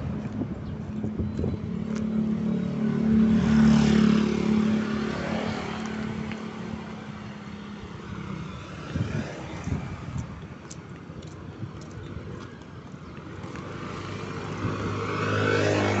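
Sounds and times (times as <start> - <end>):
motorcycle passing: 0.0 - 10.4, 13.4 - 16.0
road traffic: 0.0 - 16.0.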